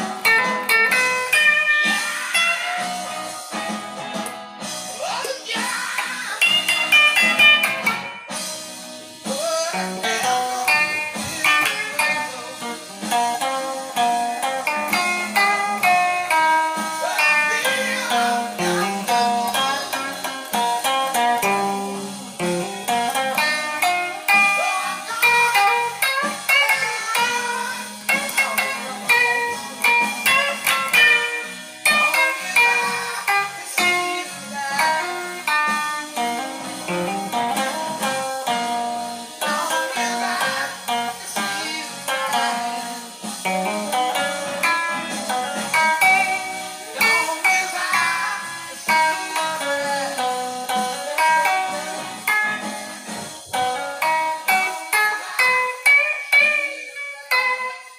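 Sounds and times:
electric guitar solo: 0.0 - 57.9.

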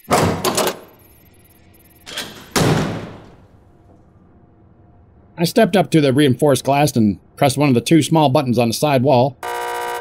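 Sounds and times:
door opening: 0.0 - 1.0, 2.0 - 3.5.

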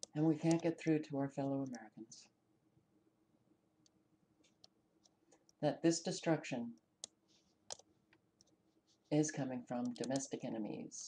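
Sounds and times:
computer mouse clicks: 0.0 - 0.8, 7.0 - 8.6, 9.8 - 10.3.

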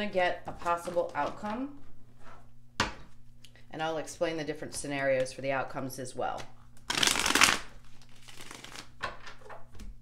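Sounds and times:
cards being shuffled by hand: 6.4 - 9.5.

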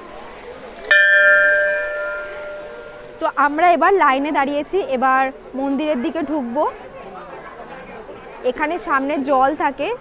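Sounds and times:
large brass bell ringing: 0.9 - 3.8.

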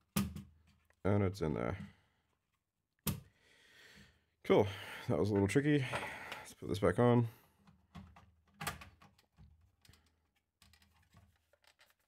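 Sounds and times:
faint breath out: 5.8 - 6.5.

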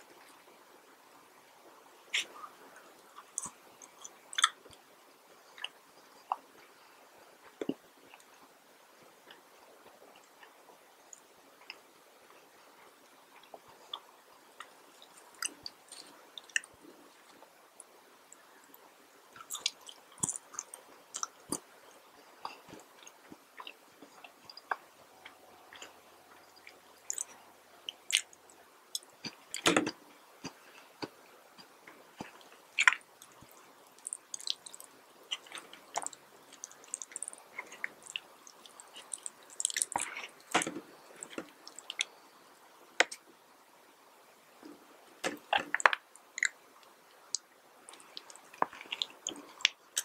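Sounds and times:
person chewing food: 2.1 - 4.8, 5.4 - 6.7, 12.8 - 42.3, 44.6 - 50.0
wet mouth clicks and smacks: 26.6 - 29.7, 34.0 - 40.6
crisp crackles of breaded patty: 32.2 - 42.1.

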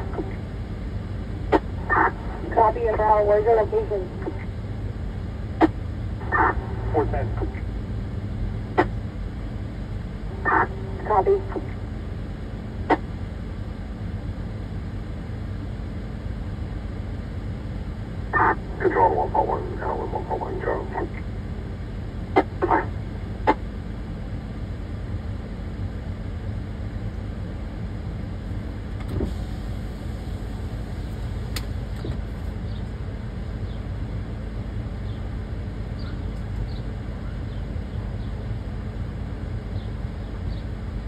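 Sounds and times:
vehicle engine idling: 0.0 - 41.0.

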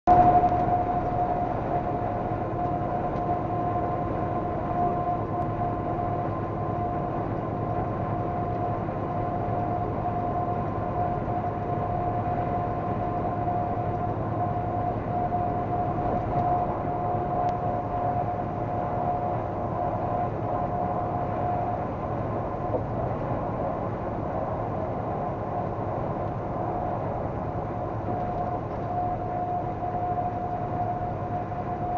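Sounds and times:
constant whining tone: 0.1 - 31.9.

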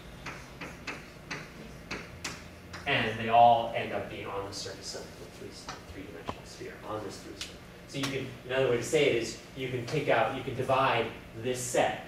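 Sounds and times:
chalk tapping on blackboard: 0.2 - 2.4.

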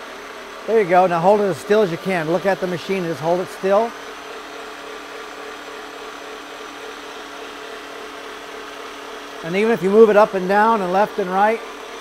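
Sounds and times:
paint polisher motor hum: 0.0 - 12.0.

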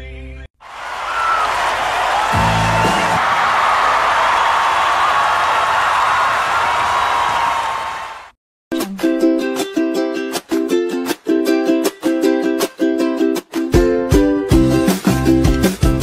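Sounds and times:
crowd cheering and applauding: 0.6 - 8.4
whistles and whoops: 0.8 - 8.1.

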